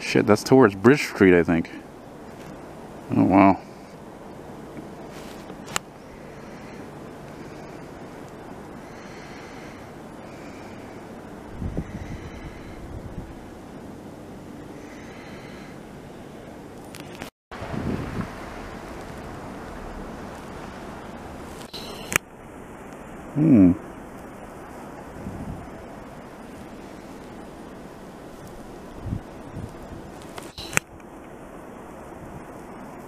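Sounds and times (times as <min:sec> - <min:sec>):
wind noise on microphone: 0:11.4 - 0:13.5, 0:17.0 - 0:22.2, 0:25.1 - 0:25.9, 0:28.5 - 0:31.0.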